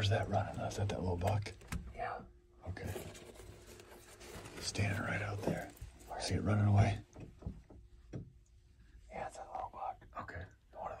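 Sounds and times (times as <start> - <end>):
whispered speech: 4.6 - 7.0, 9.1 - 11.0.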